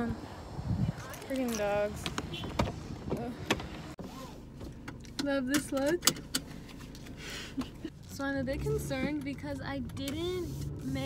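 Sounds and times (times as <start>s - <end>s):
car door being handled: 2.0s - 3.9s.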